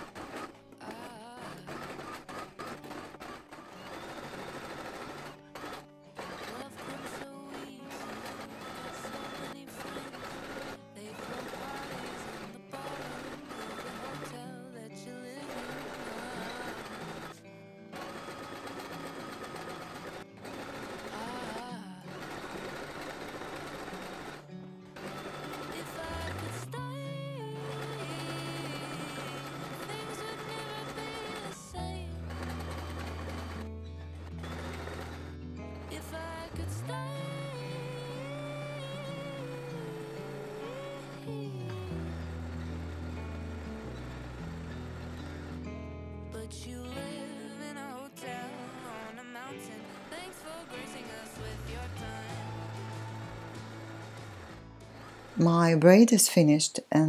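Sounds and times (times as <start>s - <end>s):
sewing machine running: 0.0s - 56.0s
background song: 0.0s - 57.0s.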